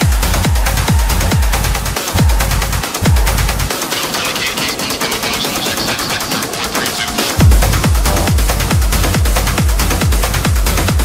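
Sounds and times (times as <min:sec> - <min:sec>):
trance music: 0:00.0 - 0:11.0
hazy synth wash: 0:05.1 - 0:09.8
fast drum roll: 0:06.4 - 0:11.0.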